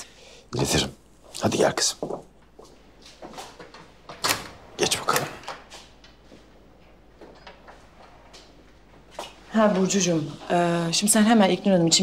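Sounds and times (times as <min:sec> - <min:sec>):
door closing: 0:03.5 - 0:05.8.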